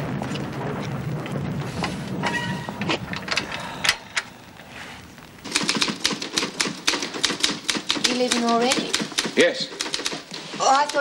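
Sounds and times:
sharp typewriter clicks: 5.5s - 11.0s.

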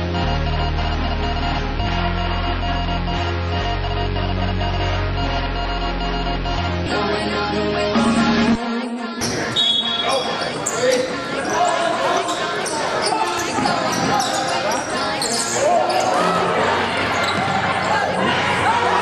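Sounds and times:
background music: 0.0s - 19.0s
voices in echoing hall: 6.9s - 19.0s.

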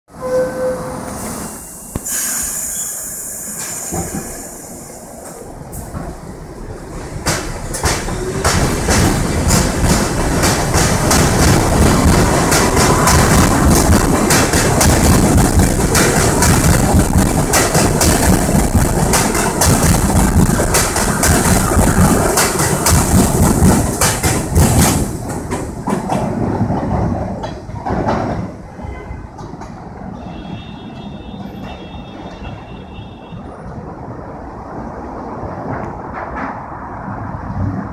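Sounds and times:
train doors closing: 0.1s - 34.0s
train wheels clicking over rail joints: 1.9s - 28.6s.

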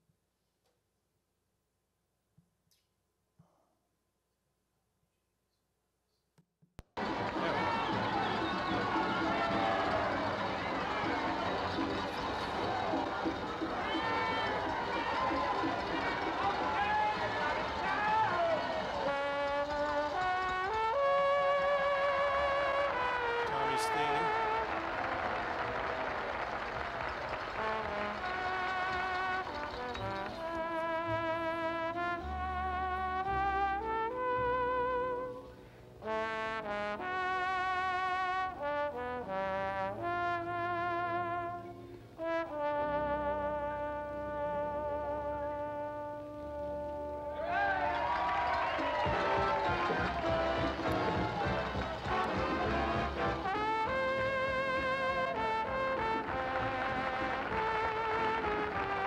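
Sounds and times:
soft big band backing: 7.0s - 59.0s
trombone melody with vibrato: 7.0s - 59.0s.

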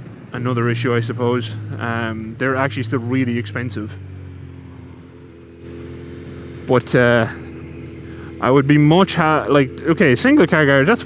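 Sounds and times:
motorcycle engine running steadily: 0.0s - 11.0s.

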